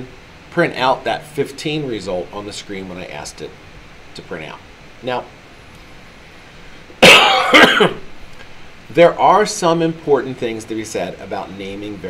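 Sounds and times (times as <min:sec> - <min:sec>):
man coughing: 0:07.0 - 0:08.1.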